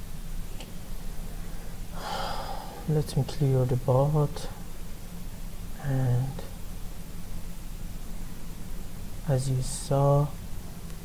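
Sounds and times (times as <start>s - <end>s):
faint low hum: 0.0s - 11.0s
person breathing in: 1.5s - 2.9s.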